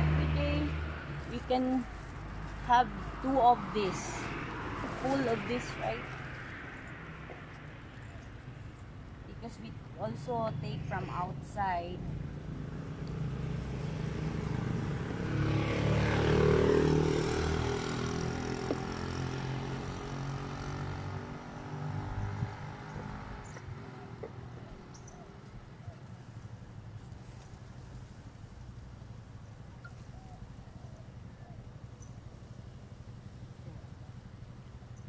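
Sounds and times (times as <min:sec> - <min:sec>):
motor vehicle passing by: 0:00.0 - 0:35.0.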